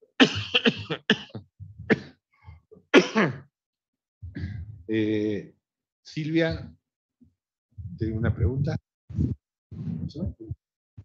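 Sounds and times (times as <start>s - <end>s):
man coughing: 0.2s - 2.2s, 2.9s - 3.5s.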